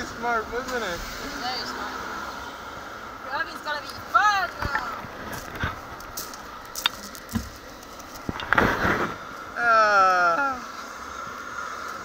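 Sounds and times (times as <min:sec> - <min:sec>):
rustling noise: 0:04.4 - 0:09.4.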